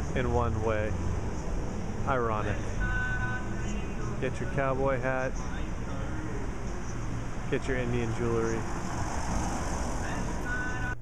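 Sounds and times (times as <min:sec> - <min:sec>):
road vehicle passing: 0:00.0 - 0:11.0.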